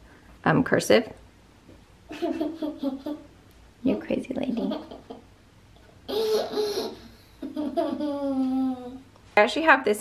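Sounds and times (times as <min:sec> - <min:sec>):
girl laughing: 0:02.1 - 0:03.3, 0:04.5 - 0:05.3, 0:06.1 - 0:09.0.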